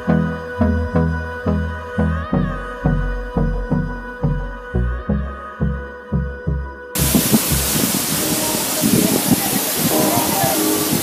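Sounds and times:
music with low pulsing beat: 0.0s - 11.0s
waterfall rushing: 7.0s - 11.0s.

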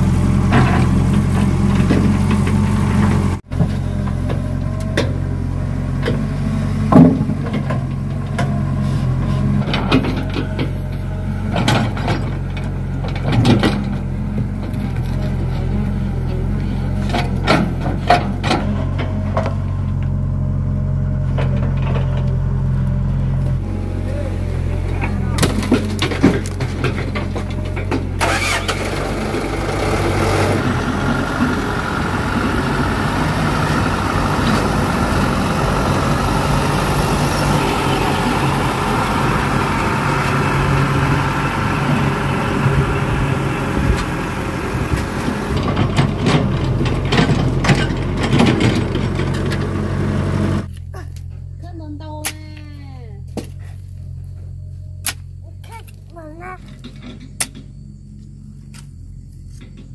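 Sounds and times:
diesel engines running: 0.0s - 59.9s.

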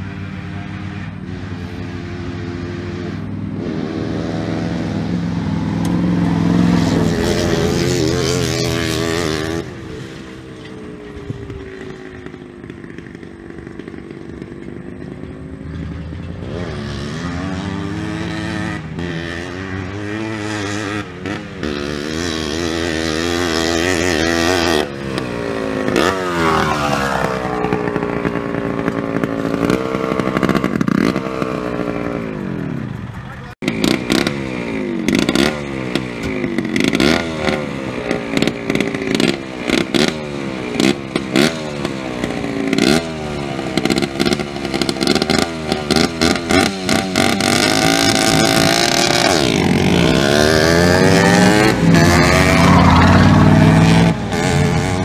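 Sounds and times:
diesel pickup engine drone: 0.0s - 55.0s
quad two-stroke engine revving: 0.0s - 55.0s.

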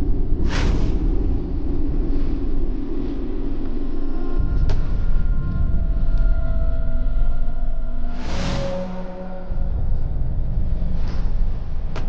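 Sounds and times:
low rumbling suspense drone: 0.0s - 12.0s.

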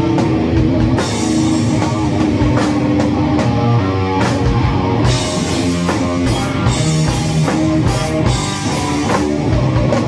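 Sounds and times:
drums and cymbals: 0.0s - 10.0s
electric guitar riff: 0.0s - 10.0s.

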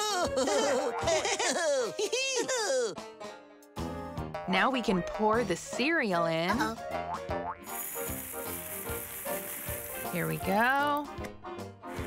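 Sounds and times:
cereal pouring into a bowl: 7.6s - 11.1s.

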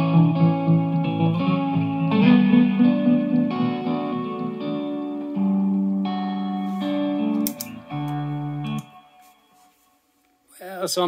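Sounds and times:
overdriven electric guitar with tremolo: 0.0s - 9.5s
looped backing part: 0.0s - 11.0s
sharp clicks: 7.4s - 8.2s.

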